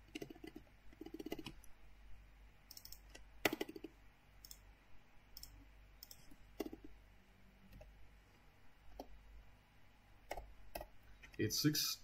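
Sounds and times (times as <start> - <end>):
keyboard and mouse clicks: 0.0 - 1.7, 2.7 - 4.6, 5.3 - 6.9.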